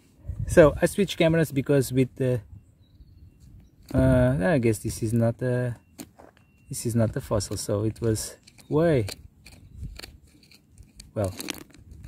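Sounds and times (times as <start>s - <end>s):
metal pick scraping gravelly soil: 5.9s - 12.0s.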